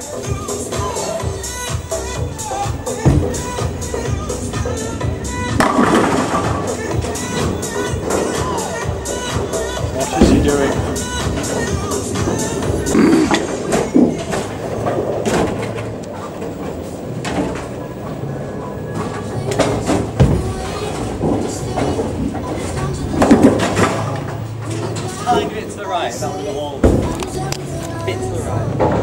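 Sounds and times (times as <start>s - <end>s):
people's voices: 0.0s - 15.2s, 17.6s - 29.0s
background music: 0.0s - 29.0s
bowling balls and pins clattering: 0.1s - 29.0s.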